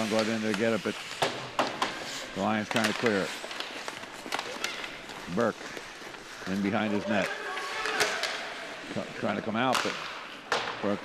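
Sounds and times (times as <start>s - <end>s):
hockey stick and puck clacks: 0.0s - 8.6s, 9.5s - 11.0s.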